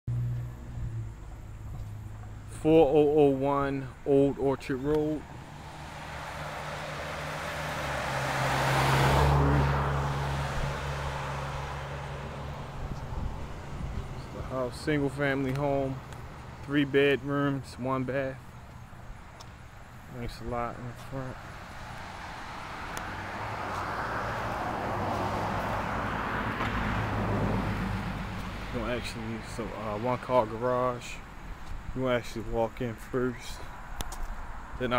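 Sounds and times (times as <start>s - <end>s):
outdoor background noise: 0.1s - 34.9s
car passing by: 5.2s - 16.6s, 19.5s - 31.6s.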